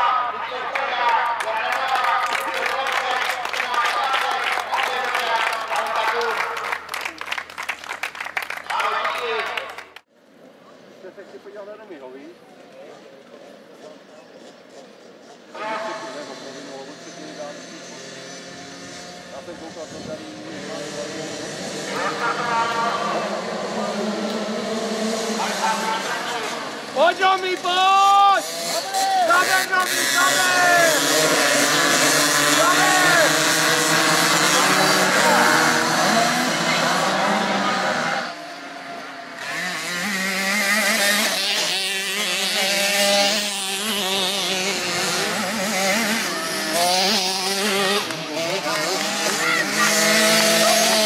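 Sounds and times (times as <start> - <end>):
speech: 0.0 - 6.8
applause: 0.7 - 10.0
small engines revving: 13.7 - 51.0
small motocross bikes idling: 13.8 - 24.2, 25.4 - 51.0.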